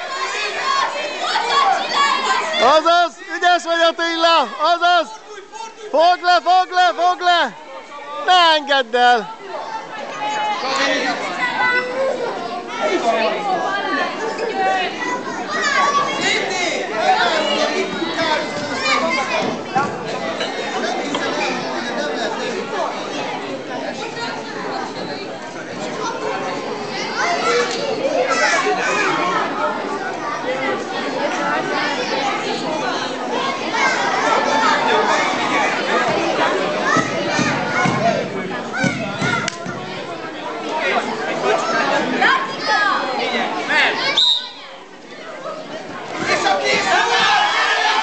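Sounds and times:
high children's voices: 0:00.0 - 0:03.3, 0:09.2 - 0:20.2, 0:25.8 - 0:48.0
crowd chatter: 0:00.0 - 0:48.0.

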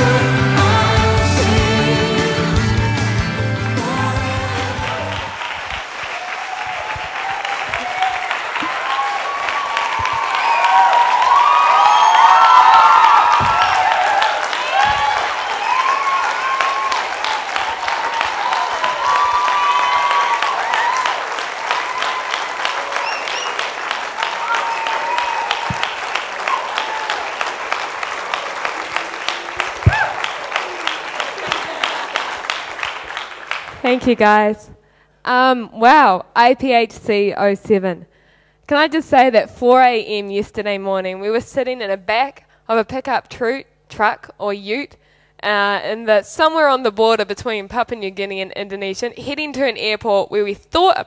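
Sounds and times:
backing music: 0:00.0 - 0:05.5
audience cheering and whooping: 0:00.0 - 0:33.6
audience clapping: 0:00.0 - 0:34.4.

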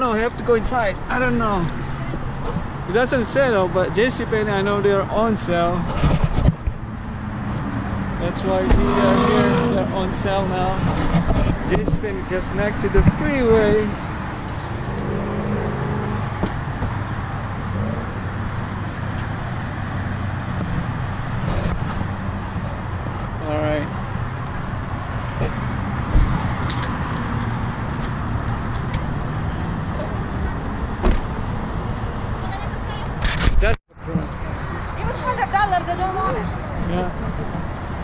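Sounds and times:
freeway traffic rumble: 0:00.0 - 0:38.0.

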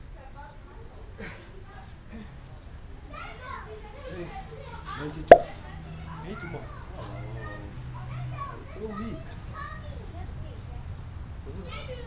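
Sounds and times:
children chattering and calling: 0:00.1 - 0:12.0.

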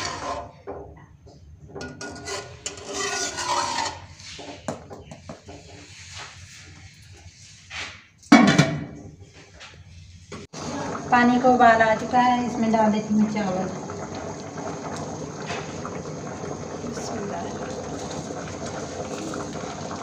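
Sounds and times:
metal spoon scraping a pot: 0:00.0 - 0:00.6, 0:01.8 - 0:06.0.

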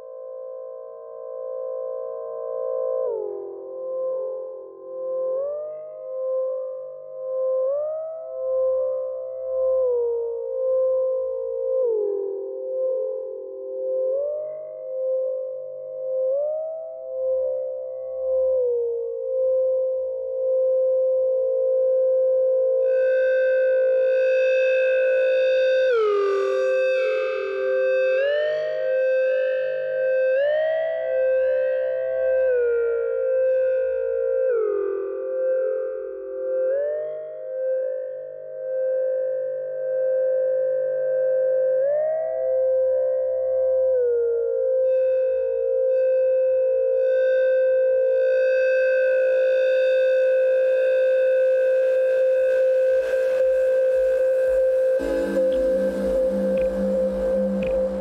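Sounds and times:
synthesizer tone sliding in pitch: 0:53.0 - 0:58.0.

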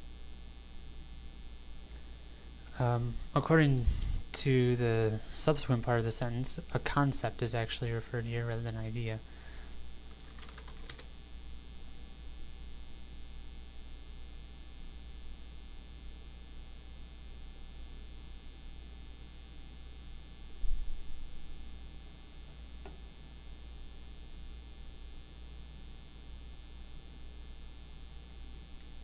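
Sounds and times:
low electrical hum: 0:00.0 - 0:29.0
keyboard typing clicks: 0:10.1 - 0:11.1.

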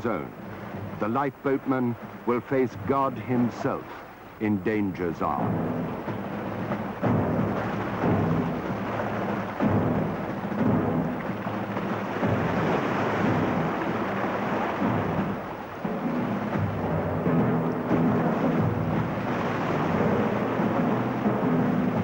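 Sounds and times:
stormy sea and surf roaring: 0:00.0 - 0:22.0
dramatic orchestral music: 0:05.0 - 0:22.0.

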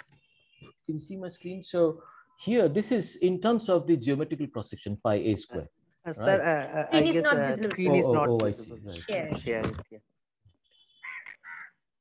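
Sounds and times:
harsh bird calls: 0:10.6 - 0:11.8.

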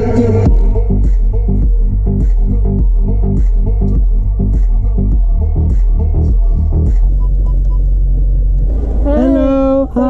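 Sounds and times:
car engine idling: 0:00.0 - 0:10.0
person calling out: 0:09.0 - 0:10.0.

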